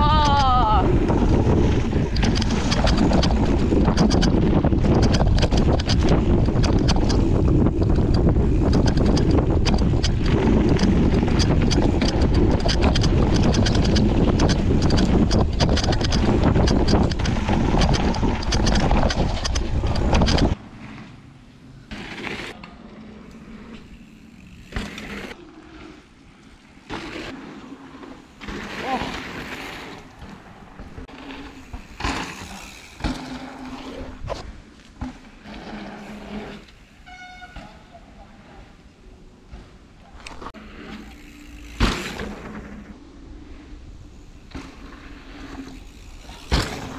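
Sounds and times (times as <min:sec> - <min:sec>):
wind on microphone: 0:00.0 - 0:20.6
bike tyre rumble and rattling: 0:00.0 - 0:46.9.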